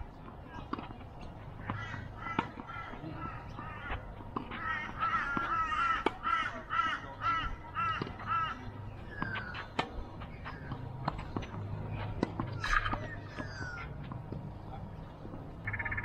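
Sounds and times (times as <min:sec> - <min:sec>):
rackets striking tennis ball: 0:00.2 - 0:06.3, 0:09.1 - 0:14.4.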